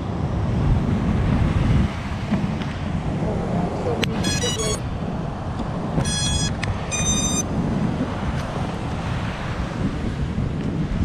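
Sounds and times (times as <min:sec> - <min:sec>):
wind buffeting microphone: 0:00.0 - 0:11.0
short high electronic tones: 0:04.2 - 0:04.8, 0:06.0 - 0:07.5.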